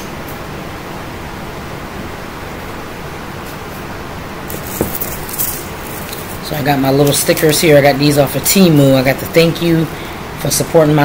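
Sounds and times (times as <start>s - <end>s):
room noise hiss: 0.0s - 11.0s
sticker sheet rustling: 4.5s - 6.4s.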